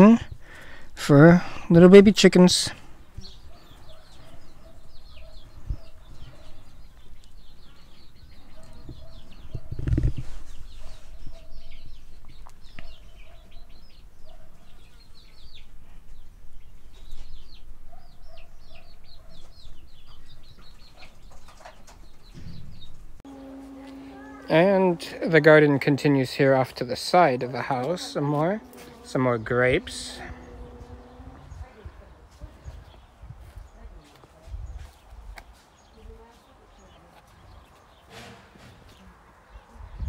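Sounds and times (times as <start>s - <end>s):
baby chickens peeping: 0.0s - 25.6s, 26.3s - 38.2s.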